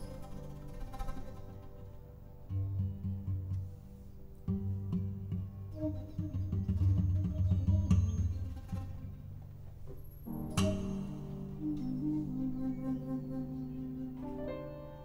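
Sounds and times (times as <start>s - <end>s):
low plucked strings music: 0.0s - 15.0s.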